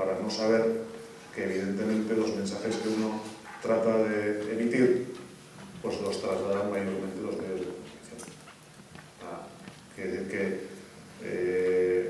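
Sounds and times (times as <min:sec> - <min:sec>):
man speaking: 0:00.0 - 0:05.2, 0:05.8 - 0:08.2, 0:09.2 - 0:12.0.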